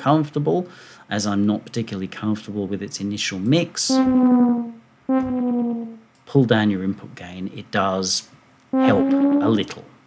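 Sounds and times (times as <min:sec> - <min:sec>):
synthesizer notes gliding down: 0:03.9 - 0:06.0, 0:08.8 - 0:09.7.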